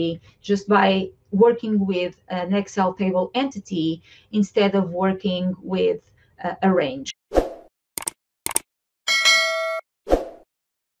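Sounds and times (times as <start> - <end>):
quick sharp clicks: 8.0 - 8.7
bright bell-like ding: 9.1 - 9.8.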